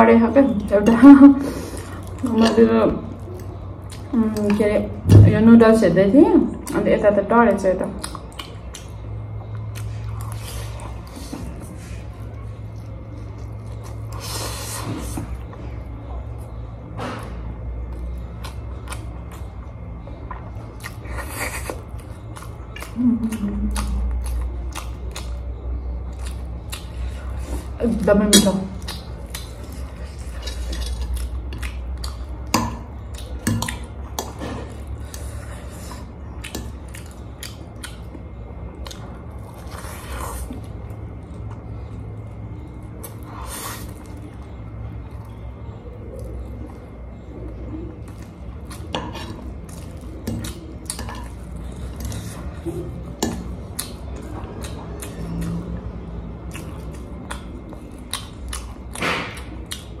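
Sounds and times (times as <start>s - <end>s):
steady low hum: 0.0s - 60.0s
eating sounds: 7.9s - 60.0s.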